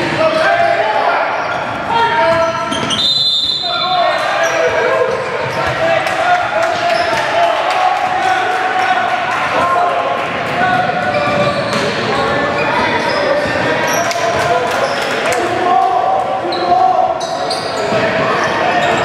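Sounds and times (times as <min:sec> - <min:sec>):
players calling out: 0:00.0 - 0:19.0
sneaker squeaks: 0:01.2 - 0:06.0, 0:06.8 - 0:07.4, 0:10.9 - 0:15.2, 0:16.4 - 0:19.0
ball bouncing on hardwood court: 0:04.7 - 0:05.9.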